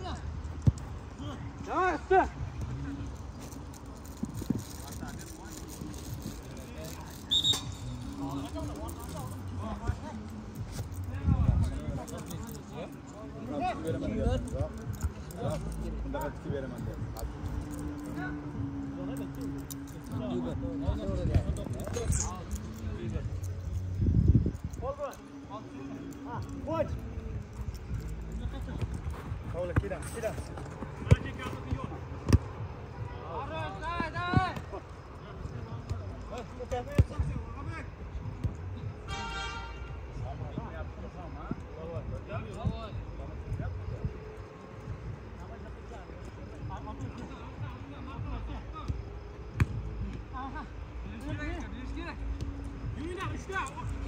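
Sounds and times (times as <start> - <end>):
ball being kicked: 28.7 - 32.6.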